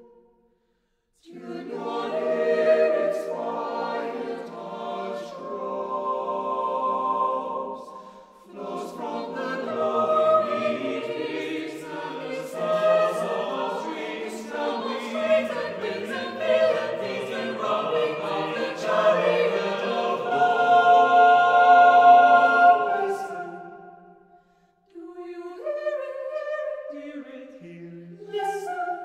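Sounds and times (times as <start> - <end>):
choir singing a cappella: 1.2 - 24.3, 24.9 - 29.0.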